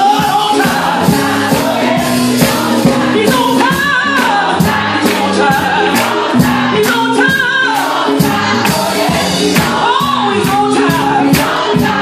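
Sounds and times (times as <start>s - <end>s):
lead singer on a microphone: 0.0s - 1.8s, 9.0s - 12.0s
church choir singing: 0.0s - 12.0s
drum beat: 0.0s - 12.0s.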